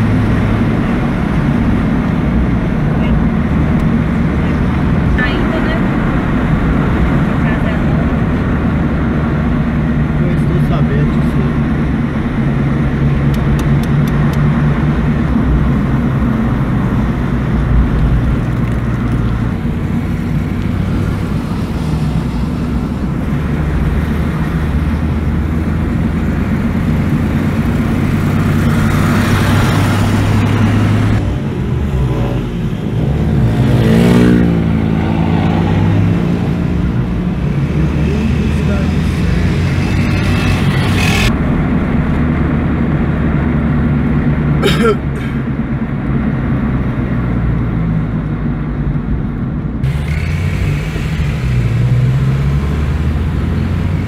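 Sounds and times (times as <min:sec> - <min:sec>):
car engine and road noise: 0:00.0 - 0:54.0
motorcycle passing by: 0:23.6 - 0:41.4.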